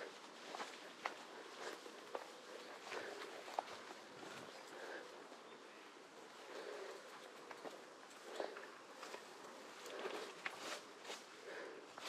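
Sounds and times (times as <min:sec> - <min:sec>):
footsteps through grass: 0:09.0 - 0:11.4.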